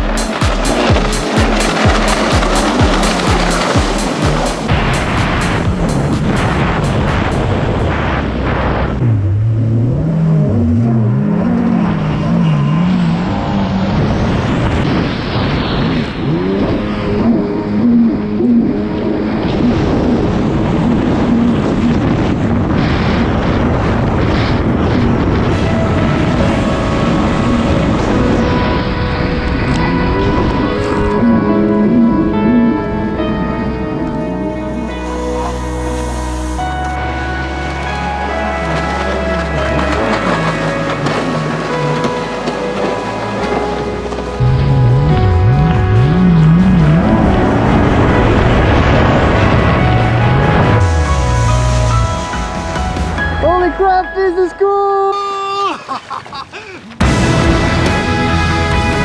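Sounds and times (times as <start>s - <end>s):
music with steady beat: 0.0s - 7.5s, 44.1s - 54.3s
jet ski engine revving: 0.0s - 53.1s, 57.0s - 59.0s.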